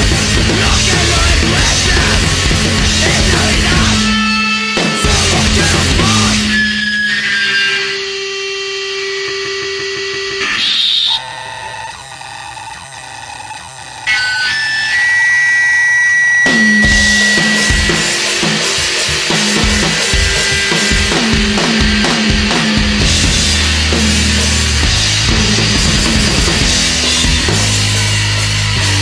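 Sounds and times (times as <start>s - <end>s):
full band with fast drums: 0.0s - 7.3s, 16.4s - 29.0s
guitar feedback and noise: 0.0s - 29.0s
whining tones: 0.0s - 29.0s.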